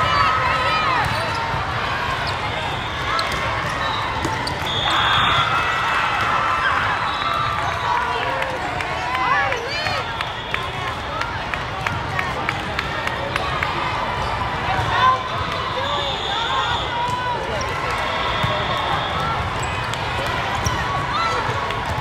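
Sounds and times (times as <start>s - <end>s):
sneakers squeaking on court floor: 0.9s - 5.5s, 17.6s - 21.4s
volleyballs struck and bouncing: 3.1s - 4.7s.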